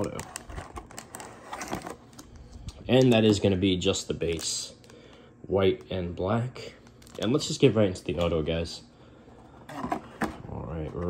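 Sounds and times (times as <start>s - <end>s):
cellophane pack rustling: 0.0s - 5.2s, 6.6s - 8.3s.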